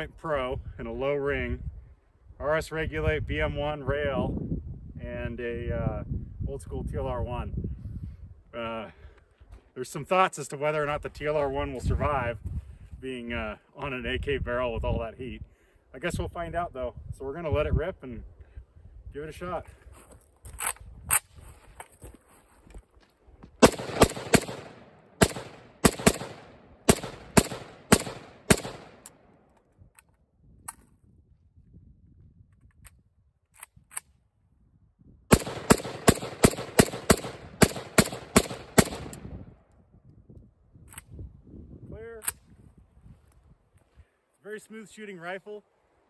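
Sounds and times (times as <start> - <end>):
rifle gunshots: 23.6 - 29.1, 35.3 - 39.3.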